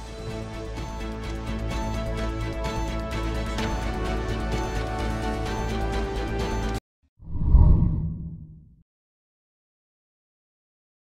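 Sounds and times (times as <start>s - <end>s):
deep whoosh: 7.2s - 8.8s.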